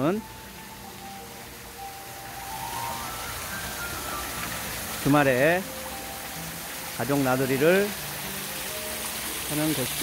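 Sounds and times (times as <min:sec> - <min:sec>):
faint music with held notes: 0:00.0 - 0:10.0
waterfall splashing into pool: 0:00.0 - 0:10.0.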